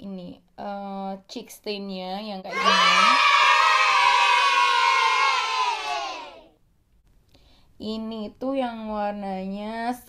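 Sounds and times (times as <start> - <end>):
people talking: 0.0 - 3.3, 7.8 - 10.0
children cheering and shouting: 2.5 - 6.5.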